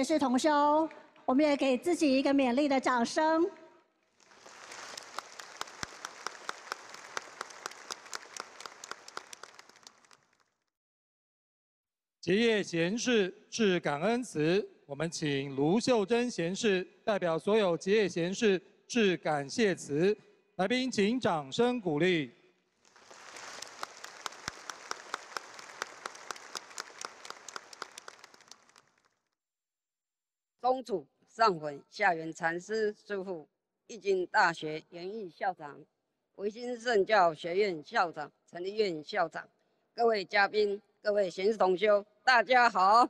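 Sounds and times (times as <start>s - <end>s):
audience applauding: 4.2s - 10.5s, 22.9s - 29.1s
sharp nearby hand claps: 4.6s - 10.3s, 23.1s - 29.0s
single sharp claps: 23.1s - 28.9s.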